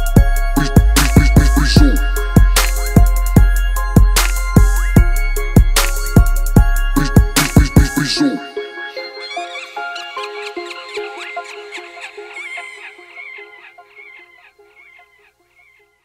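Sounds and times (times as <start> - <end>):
hip-hop beat: 0.0 - 12.3
sinister laughing voice: 9.2 - 14.6.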